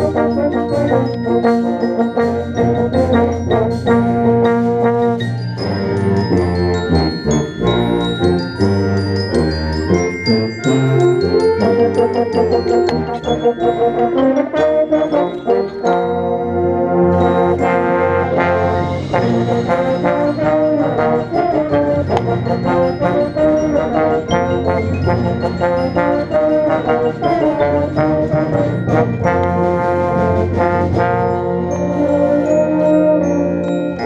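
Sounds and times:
bass trombone: 0.0s - 34.0s
concert band music: 0.0s - 34.0s.

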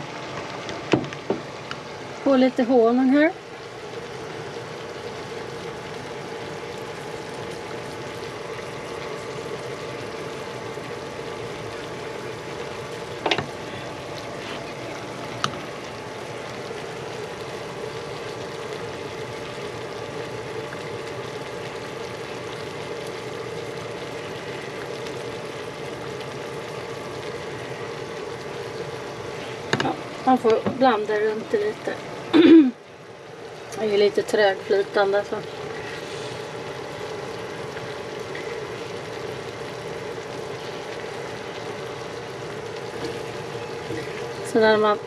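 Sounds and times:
chicken sizzling in a pan: 0.0s - 45.0s.

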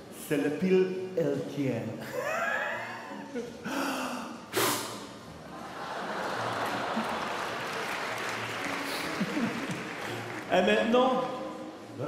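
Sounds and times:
audience applauding: 5.6s - 11.2s.

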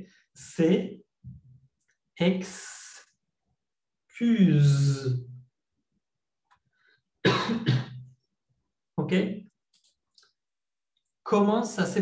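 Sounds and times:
man coughing: 7.2s - 8.1s.

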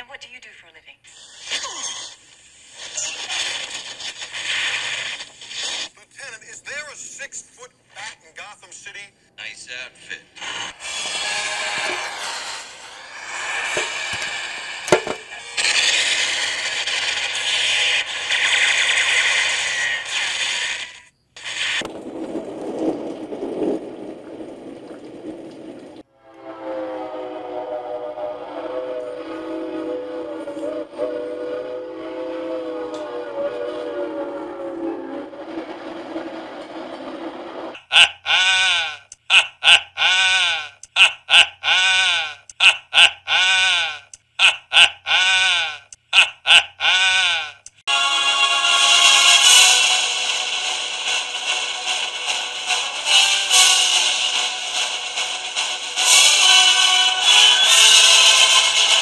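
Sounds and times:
long held chord: 26.1s - 35.2s
film soundtrack music: 47.9s - 59.0s.

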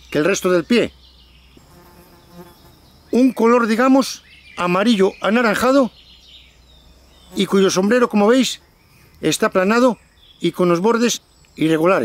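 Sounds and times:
flying insect buzzing: 1.4s - 3.1s.

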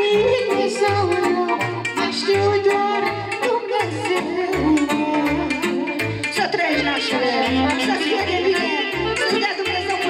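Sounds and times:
electronic organ with bass line: 0.0s - 10.0s
woman singing into a microphone: 0.0s - 10.0s.

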